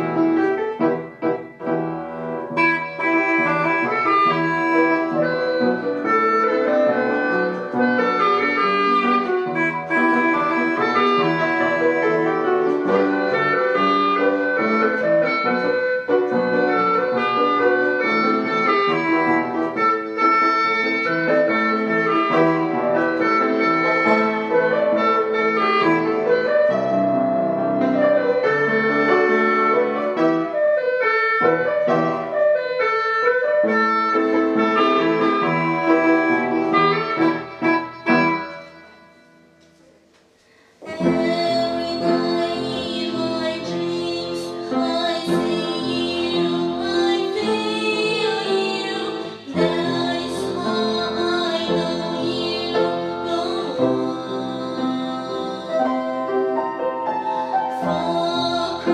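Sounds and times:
free-reed wind instrument melody: 0.0s - 39.9s, 40.8s - 58.9s
piano accompaniment: 0.0s - 58.9s.

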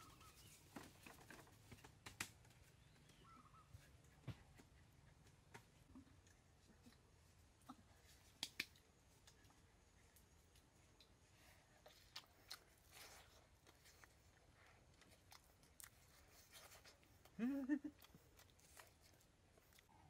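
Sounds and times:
people chewing soft fruit: 0.0s - 20.0s
quiet hiss: 0.0s - 20.0s.

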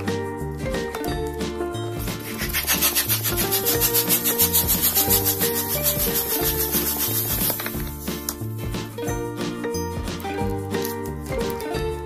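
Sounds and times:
light background music: 0.0s - 12.0s
balloon pump rushing air: 2.0s - 8.2s.

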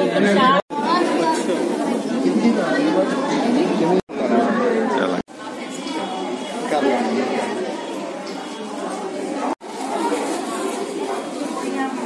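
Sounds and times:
indistinct chatter of people: 0.0s - 12.0s.

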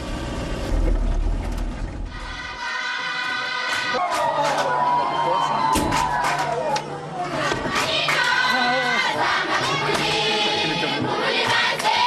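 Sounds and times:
vehicle engine and road rumble: 0.0s - 2.6s.

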